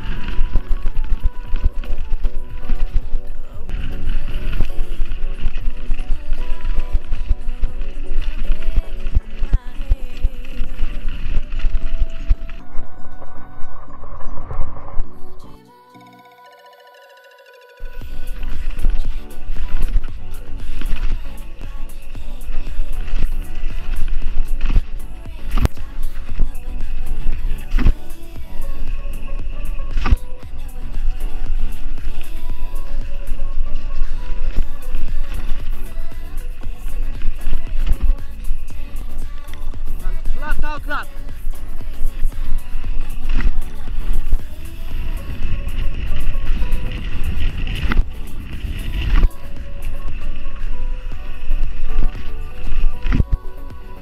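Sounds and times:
bike tyres rolling: 0.0s - 54.0s
music track: 0.0s - 54.0s.

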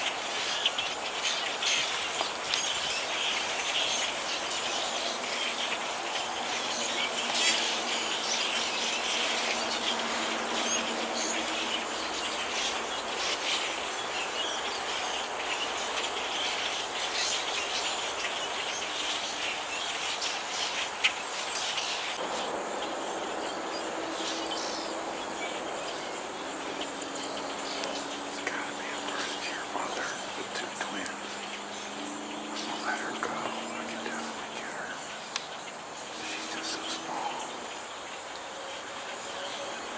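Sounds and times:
flock of songbirds chattering: 0.0s - 39.9s.

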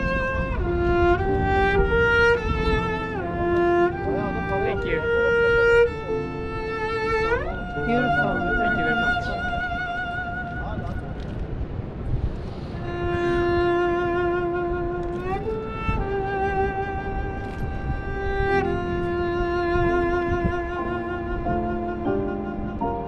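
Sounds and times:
bowed cello melody: 0.0s - 23.0s.

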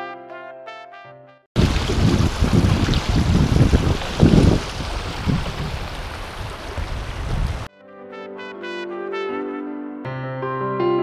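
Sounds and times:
river water rushing over stones: 1.6s - 7.7s
wind buffeting microphone: 1.6s - 7.7s.

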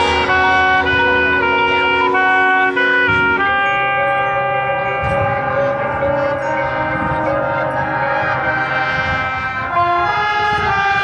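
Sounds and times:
marching band sustained chord: 0.0s - 11.0s.

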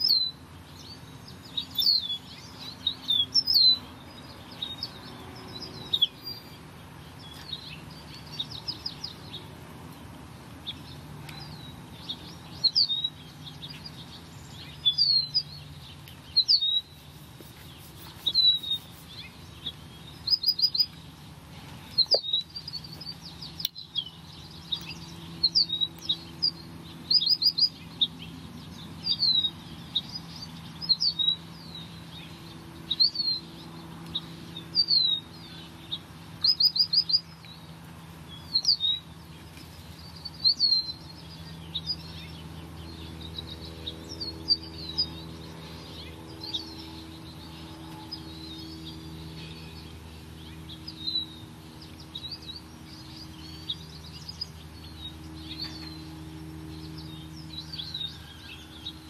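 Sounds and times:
faint low hum: 0.0s - 59.0s
songbird chirping: 0.0s - 59.0s.

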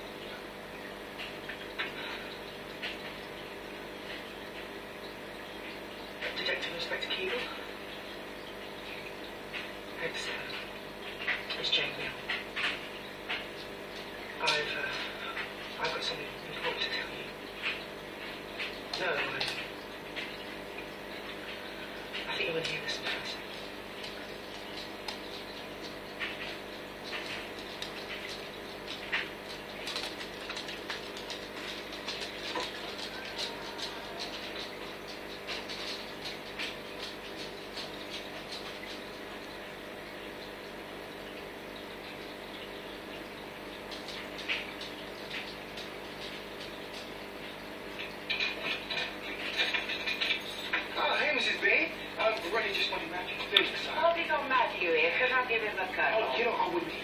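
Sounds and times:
aquarium equipment hum: 0.0s - 57.0s
bubbling water crackle: 0.0s - 57.0s.

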